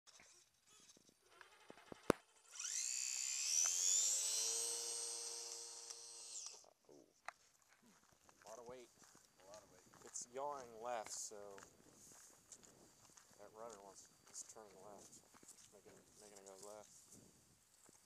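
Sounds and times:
model plane motor whine: 0:00.1 - 0:06.6.

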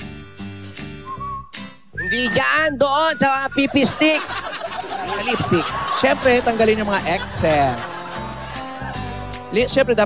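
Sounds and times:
soft background music with bass: 0:00.0 - 0:10.0
whistled tune: 0:01.0 - 0:03.9.

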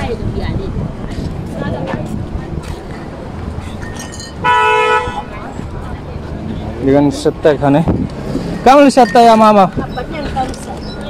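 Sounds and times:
street traffic noise: 0:00.0 - 0:11.0
vehicle horn honk: 0:04.4 - 0:05.4.

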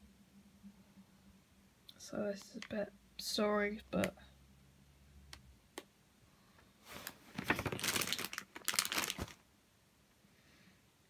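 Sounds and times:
paper pages rustling: 0:06.8 - 0:09.4.

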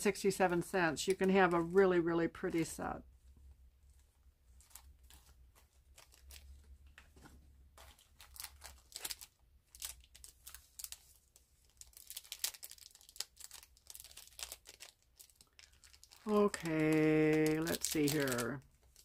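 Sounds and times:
plastic packaging crinkling: 0:04.5 - 0:19.0.

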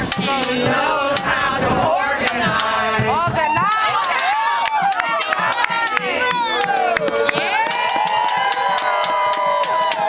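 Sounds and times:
women singing together: 0:00.0 - 0:07.7
crowd clapping and cheering: 0:02.4 - 0:10.0.

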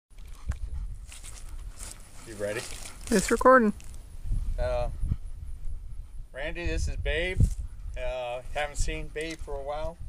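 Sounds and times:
wind rumble on microphone: 0:00.2 - 0:10.0.

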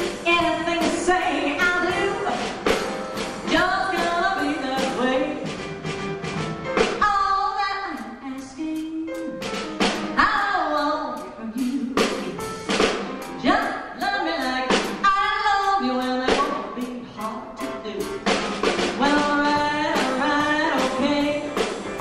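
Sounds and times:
band playing: 0:00.0 - 0:22.0
steady drum beat: 0:00.0 - 0:22.0
woman singing into microphone: 0:00.1 - 0:02.6, 0:03.5 - 0:05.5, 0:07.0 - 0:09.5, 0:10.2 - 0:12.6, 0:13.4 - 0:18.4, 0:19.0 - 0:21.6.

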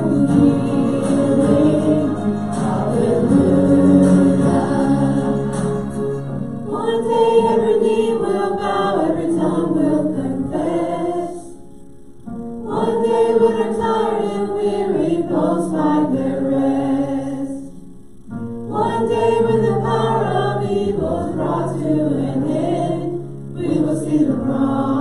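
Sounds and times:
voices singing a hymn: 0:00.0 - 0:11.9, 0:12.6 - 0:18.0, 0:18.6 - 0:25.0.

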